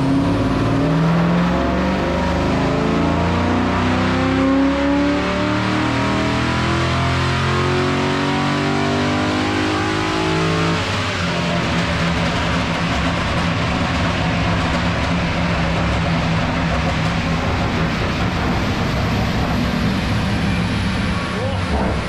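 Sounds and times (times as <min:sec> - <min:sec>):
car engine running hard: 0:00.0 - 0:22.0.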